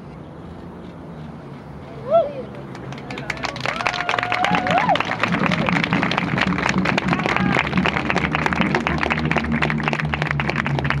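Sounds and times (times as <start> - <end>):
crowd applauding: 2.5 - 11.0.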